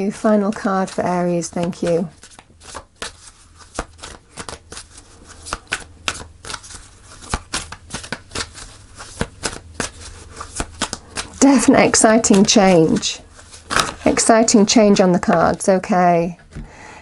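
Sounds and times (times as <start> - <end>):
cards being shuffled: 0.0 - 15.7
low steady hum: 0.0 - 17.0.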